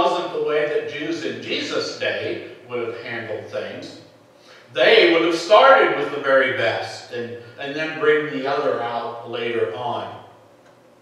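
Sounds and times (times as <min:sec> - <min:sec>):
man preaching: 0:00.0 - 0:04.0, 0:04.7 - 0:10.2.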